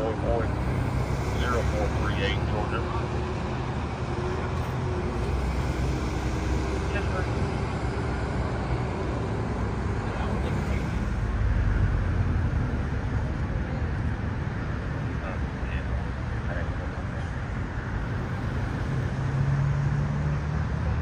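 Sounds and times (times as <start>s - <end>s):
vehicle passing close: 0.0s - 15.4s, 17.4s - 21.0s
highway traffic: 0.0s - 21.0s.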